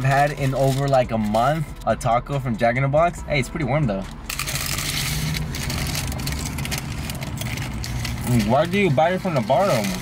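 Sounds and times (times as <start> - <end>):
paper wrappers crinkling: 0.0 - 1.9, 4.1 - 10.0
low steady car hum: 0.0 - 10.0
crunchy taco shells being chewed: 4.3 - 10.0.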